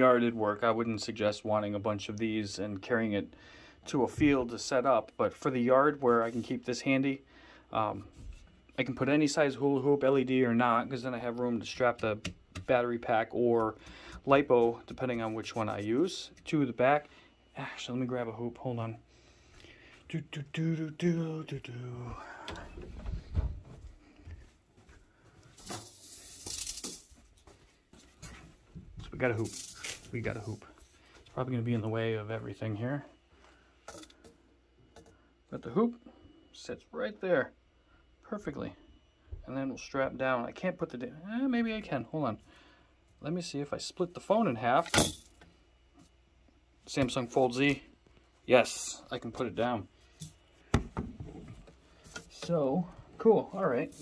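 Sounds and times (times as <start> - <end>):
footsteps: 22.0 - 31.9.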